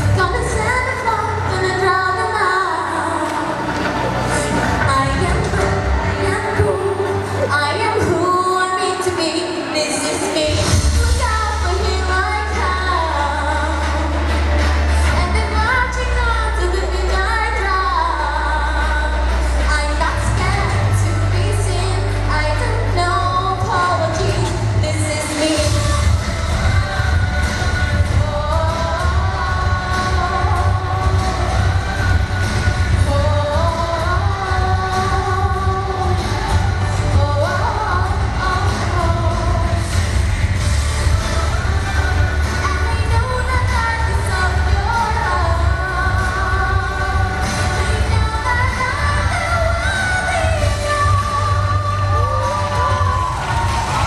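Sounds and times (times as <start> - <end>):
woman singing pop song: 0.0 - 54.0
instrumental accompaniment with bass: 10.4 - 54.0.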